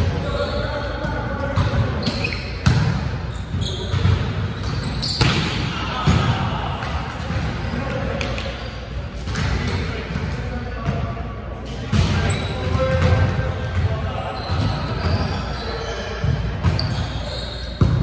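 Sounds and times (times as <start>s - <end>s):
players shouting and chatter: 0.0s - 18.0s
volleyball hits: 1.5s - 8.5s.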